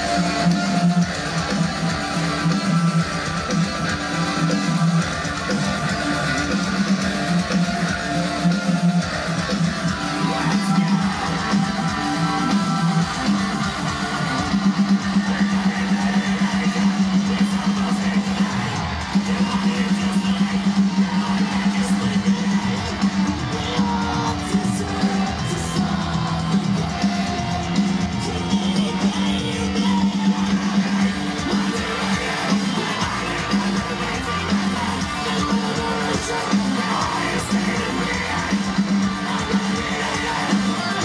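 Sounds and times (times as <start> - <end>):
metal band playing live: 0.0 - 41.0.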